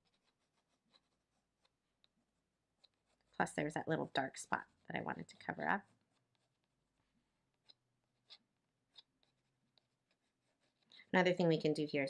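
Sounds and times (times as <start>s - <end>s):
pencil scratching on paper: 0.0s - 11.2s.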